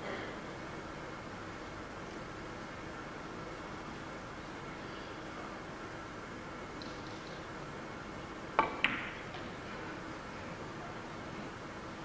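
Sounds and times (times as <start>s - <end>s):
steady low hiss: 0.0s - 12.0s
billiard balls clicking: 8.6s - 9.5s.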